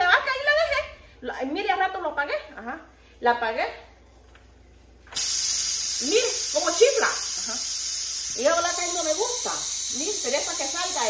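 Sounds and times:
pressure cooker steam hissing: 5.2 - 11.0.

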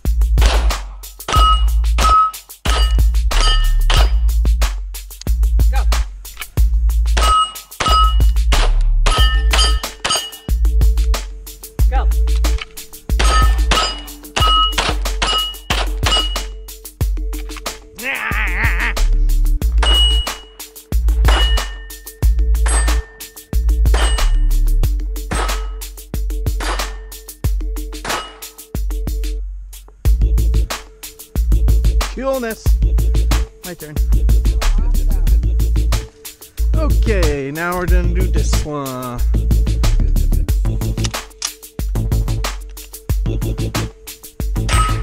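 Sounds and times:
background music with bass beat: 0.0 - 45.0
pistol shot: 0.4 - 0.8
bullets hitting steel plates ringing: 1.3 - 4.3, 7.2 - 8.4, 9.0 - 10.6, 13.1 - 16.6, 19.8 - 20.6, 21.2 - 24.6, 25.3 - 25.9, 26.5 - 27.3, 28.0 - 28.7, 44.6 - 45.0.

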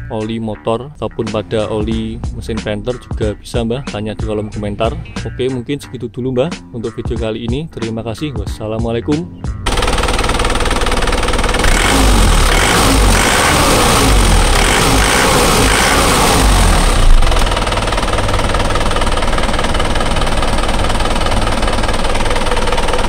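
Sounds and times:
motorcycle engine revving and idling: 9.6 - 23.0.

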